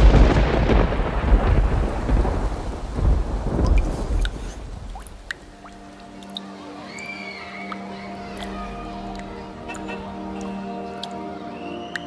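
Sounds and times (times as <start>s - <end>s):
rolling thunder: 0.0s - 5.3s
heavy rain: 0.0s - 12.0s.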